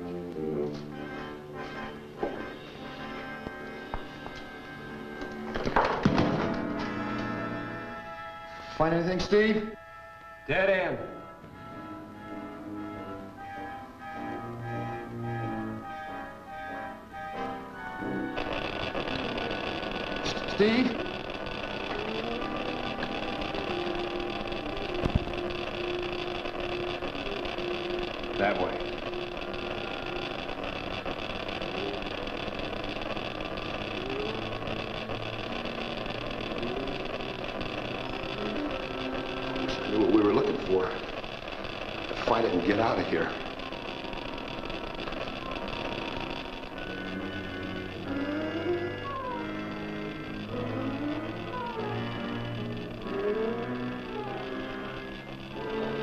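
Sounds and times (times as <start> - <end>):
suspenseful film score: 0.0 - 30.6, 42.0 - 56.0
brief voice calls: 48.7 - 49.7.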